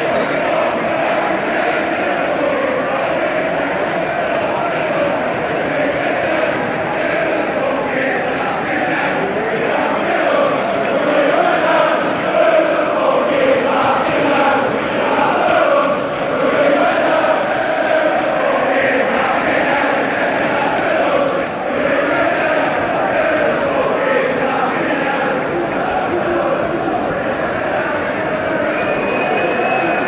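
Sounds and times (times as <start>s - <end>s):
crowd chanting: 0.0s - 30.0s
fans chatter: 0.0s - 30.0s.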